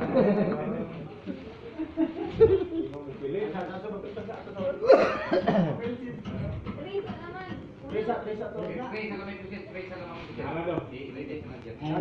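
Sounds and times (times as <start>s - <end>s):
people chattering: 0.0s - 12.0s
loud cough: 4.8s - 5.9s.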